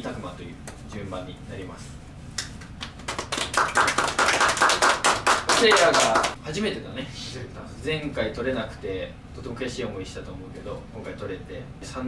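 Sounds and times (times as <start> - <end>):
people clapping: 2.4 - 6.4.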